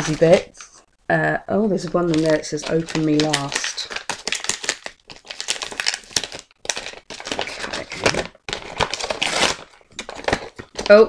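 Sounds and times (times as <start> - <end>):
wrapping paper crinkling: 0.0 - 0.8, 1.8 - 11.0.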